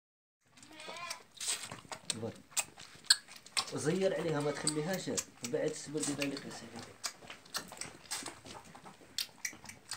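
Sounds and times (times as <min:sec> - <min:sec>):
lamb bleating: 0:00.6 - 0:01.4, 0:04.1 - 0:05.0.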